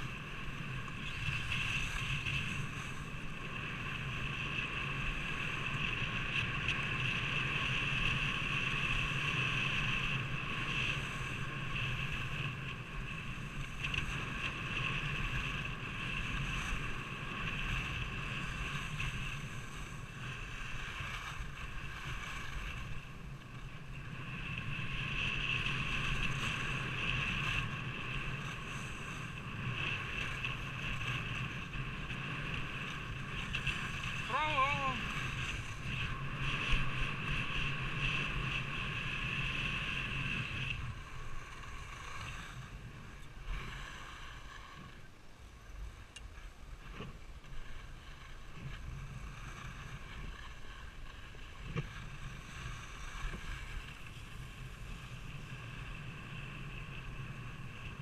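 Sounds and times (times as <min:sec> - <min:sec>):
wind rushing over microphone: 0:00.0 - 0:58.0
skis hissing over snow: 0:32.7 - 0:45.1, 0:47.5 - 0:58.0.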